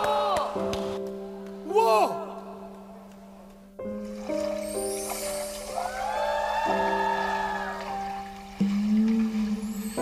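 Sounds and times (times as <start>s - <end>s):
background music of sustained tones: 0.6s - 10.0s.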